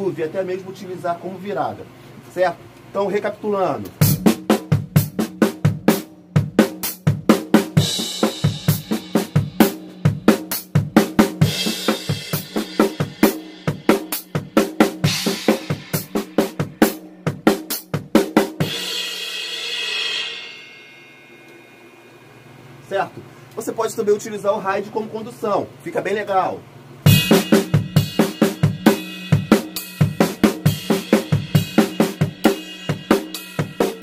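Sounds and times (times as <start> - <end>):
drum kit groove: 3.5 - 22.0, 27.0 - 34.0
cymbal crash: 18.6 - 22.3.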